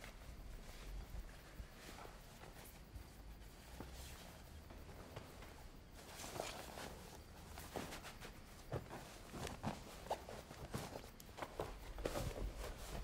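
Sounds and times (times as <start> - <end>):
soft footsteps: 0.0 - 13.0.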